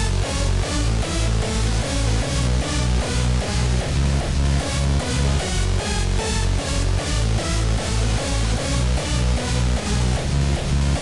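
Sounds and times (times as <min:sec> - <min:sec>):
synth lead melody: 0:00.0 - 0:11.0.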